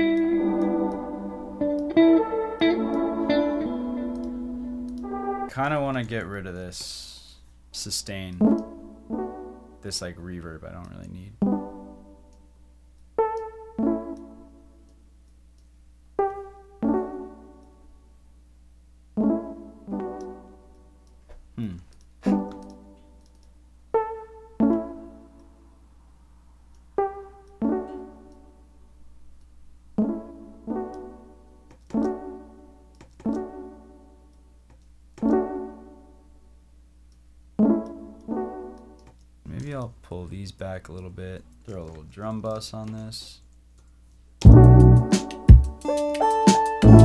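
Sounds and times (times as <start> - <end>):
synthesizer keyboard notes and chords: 0.0 - 15.1, 16.1 - 18.4, 19.0 - 36.6, 37.5 - 40.0, 44.4 - 47.0
man speaking: 5.5 - 8.6, 9.8 - 11.4, 21.6 - 22.4, 39.4 - 43.4.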